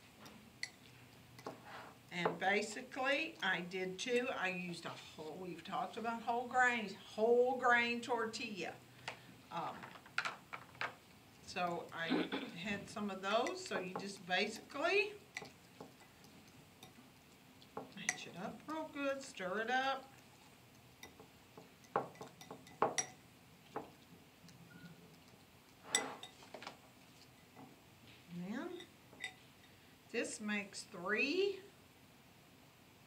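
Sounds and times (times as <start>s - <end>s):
fork clicking against glass bowl: 15.3s - 16.1s.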